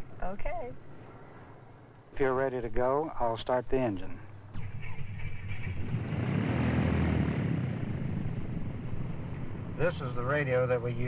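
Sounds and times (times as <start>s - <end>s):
piston aircraft engine starting: 5.4s - 10.8s.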